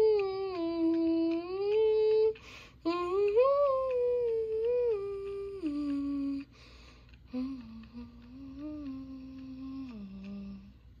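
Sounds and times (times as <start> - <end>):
person humming a slow tune: 0.0 - 11.0.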